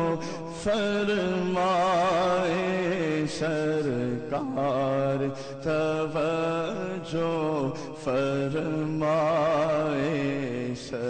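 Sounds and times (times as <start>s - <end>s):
man singing with vibrato: 0.0s - 11.0s.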